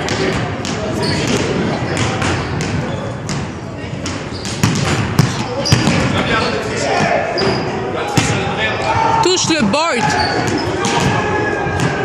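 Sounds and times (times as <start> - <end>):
basketballs bouncing on hardwood: 0.0 - 6.2
sneaker squeaks on floor: 0.7 - 3.4, 4.0 - 6.2, 7.3 - 7.8, 9.8 - 11.1.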